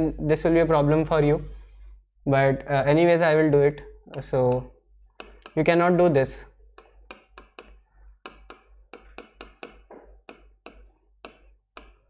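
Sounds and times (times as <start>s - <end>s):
marker pen writing on board: 4.1s - 12.0s.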